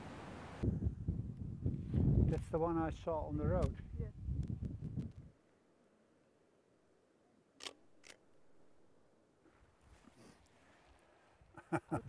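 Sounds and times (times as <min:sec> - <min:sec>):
camera shutter clicking: 0:07.6 - 0:08.2.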